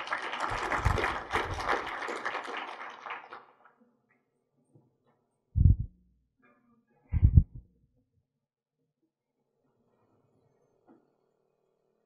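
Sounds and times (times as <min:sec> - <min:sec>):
audience applauding: 0:00.0 - 0:03.6
low thump: 0:05.6 - 0:05.9, 0:07.2 - 0:07.6.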